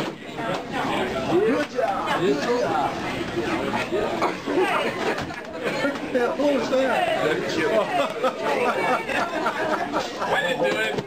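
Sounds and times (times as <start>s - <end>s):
people chatting: 0.0s - 11.0s.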